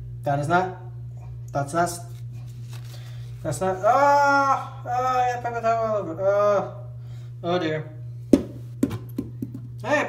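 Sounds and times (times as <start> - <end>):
bouncy ball bouncing on hard surface: 8.3 - 9.7.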